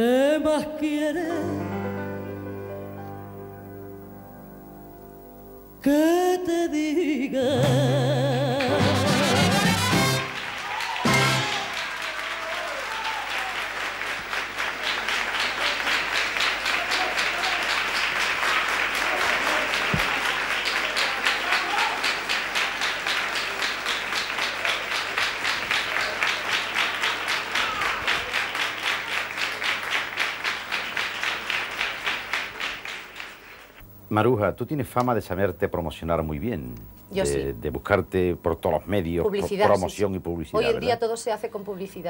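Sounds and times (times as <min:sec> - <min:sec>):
audience applauding: 0:08.5 - 0:33.8.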